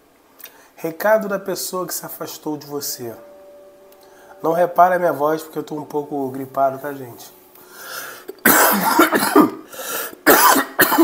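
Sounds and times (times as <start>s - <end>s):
man coughing: 8.3s - 11.0s.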